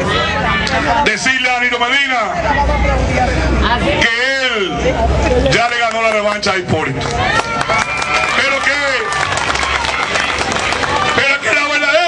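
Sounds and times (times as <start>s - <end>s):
crowd noise: 0.0s - 12.0s
man speaking over public address: 0.8s - 7.1s, 8.2s - 9.2s, 11.1s - 12.0s
people clapping: 5.5s - 12.0s.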